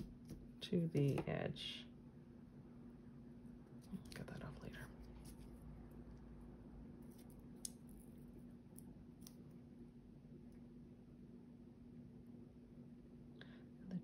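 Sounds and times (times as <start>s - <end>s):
faint steady hum: 0.0s - 14.0s.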